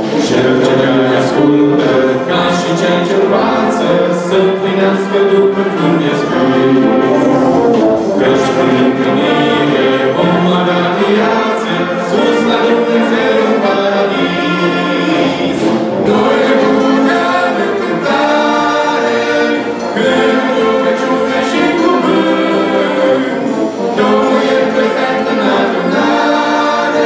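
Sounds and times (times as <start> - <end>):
brass band playing a hymn: 0.0 - 27.0
choir singing: 0.0 - 27.0.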